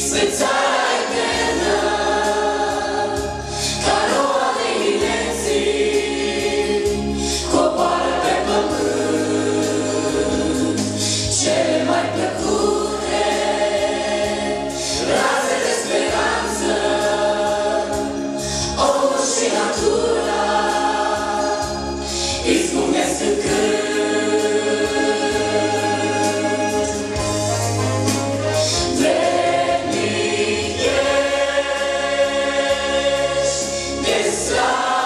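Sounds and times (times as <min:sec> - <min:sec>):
group singing worship song: 0:00.0 - 0:27.9, 0:28.6 - 0:35.0
band accompaniment with bass: 0:00.0 - 0:35.0.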